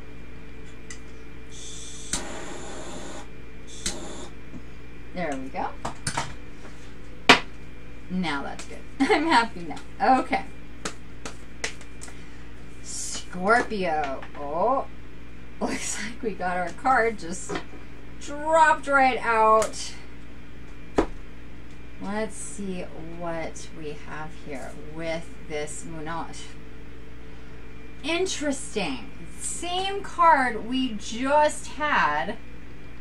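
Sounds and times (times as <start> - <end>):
cards tapped on a table: 10.8 - 12.1.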